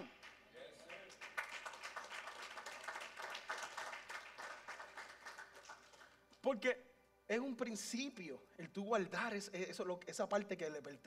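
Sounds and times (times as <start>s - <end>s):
congregation applauding: 0.0s - 6.3s.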